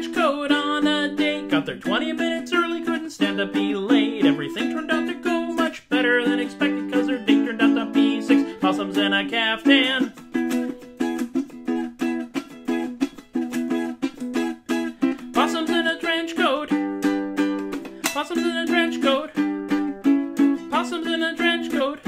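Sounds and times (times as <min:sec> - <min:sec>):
ukulele strumming: 0:00.0 - 0:22.0.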